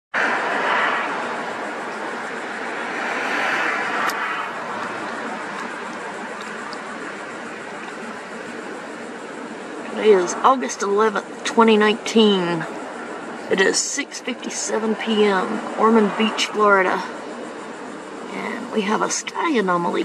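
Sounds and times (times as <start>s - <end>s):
passing vehicles rushing: 0.2s - 11.1s.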